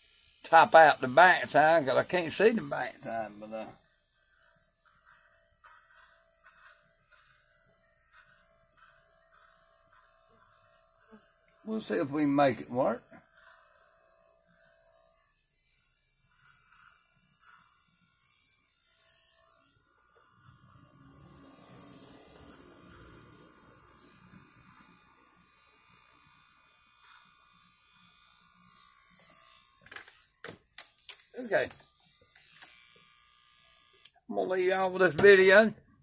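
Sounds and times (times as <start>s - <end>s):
electric hair clippers running: 0.0s - 35.8s.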